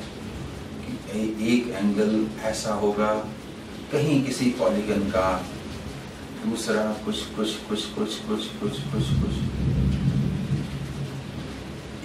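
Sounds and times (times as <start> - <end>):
low rumble: 8.6 - 12.0.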